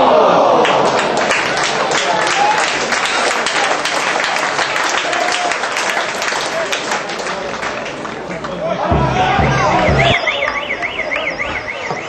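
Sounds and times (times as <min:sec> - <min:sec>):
electronic siren warbling: 0:09.0 - 0:12.0.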